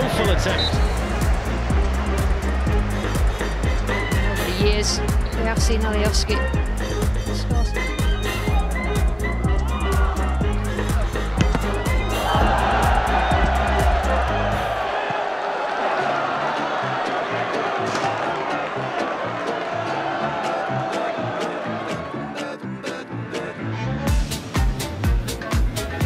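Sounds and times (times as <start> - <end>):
stadium crowd noise: 0.0 - 6.2, 8.4 - 23.5.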